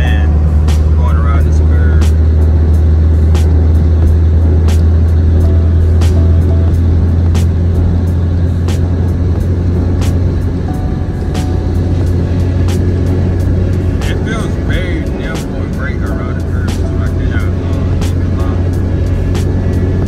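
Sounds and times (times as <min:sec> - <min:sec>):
car engine drone in cabin: 0:00.0 - 0:20.0
music with regular beat: 0:00.0 - 0:20.0
road noise: 0:00.0 - 0:20.0.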